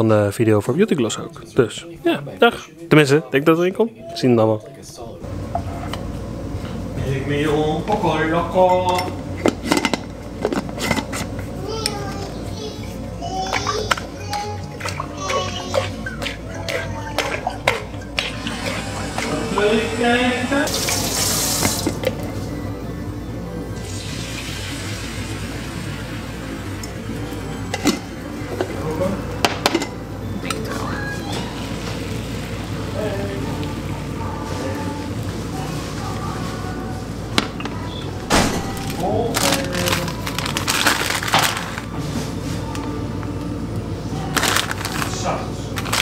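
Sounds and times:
music: 11.6s - 46.0s.

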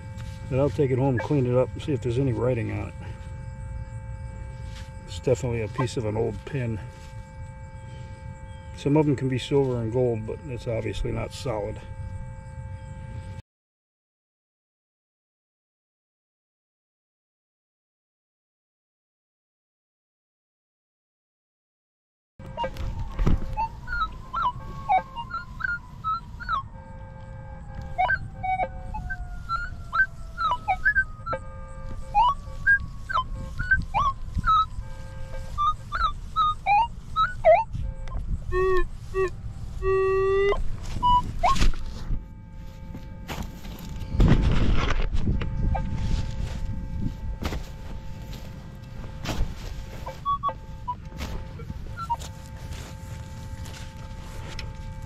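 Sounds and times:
metal detector beeps: 0.0s - 13.4s, 22.4s - 55.0s.

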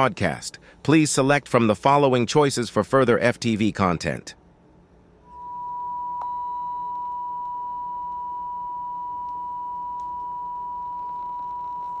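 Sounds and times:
steady test tone beep: 5.2s - 12.0s.

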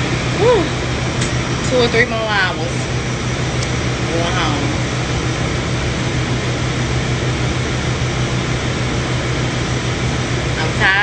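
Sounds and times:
machine drone with low hum: 0.0s - 11.0s.

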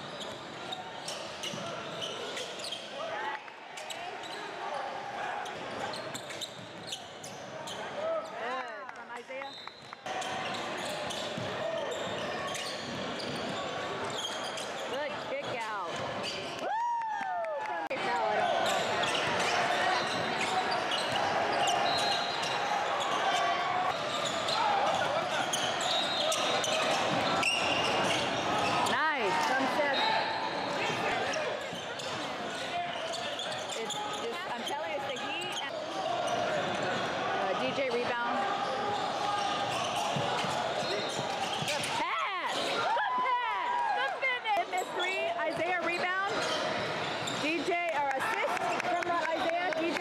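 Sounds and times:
sneaker squeaks: 0.0s - 3.1s, 5.4s - 16.6s, 18.1s - 37.1s, 37.8s - 43.4s, 44.5s - 47.9s
many voices talking: 0.0s - 16.6s, 17.7s - 50.0s.

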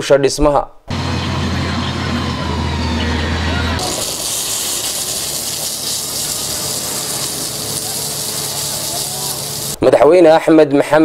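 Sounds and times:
diesel engine running under load: 0.9s - 9.8s
blade pushing gravel: 3.8s - 9.8s
spray bar hissing: 3.8s - 9.8s.

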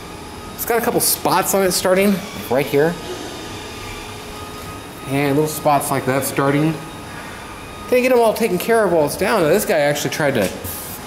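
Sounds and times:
steady background hum and hiss: 0.0s - 11.0s.

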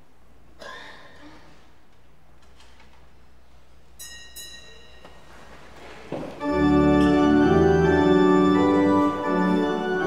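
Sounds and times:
small bell ringing: 4.0s - 5.3s.

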